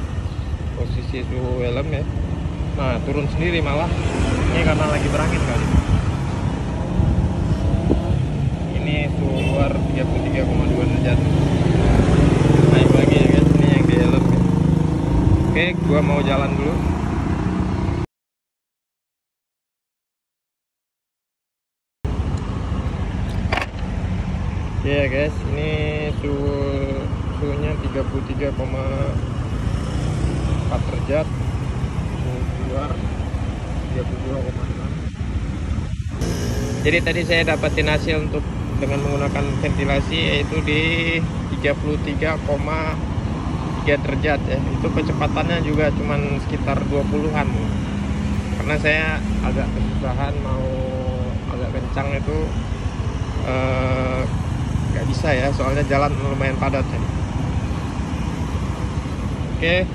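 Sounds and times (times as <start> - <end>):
traffic rumble on busy road: 0.0 - 18.1, 22.1 - 59.9
wind buffeting microphone: 5.6 - 8.6
motor scooter rumbling: 29.6 - 49.8.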